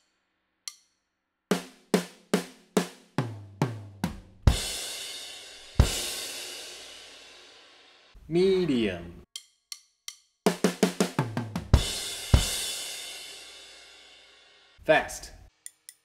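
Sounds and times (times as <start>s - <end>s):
snare and tom drum strokes: 1.5s - 7.2s, 10.5s - 13.6s
bass drum: 3.2s - 4.8s, 5.6s - 6.2s, 10.8s - 12.8s.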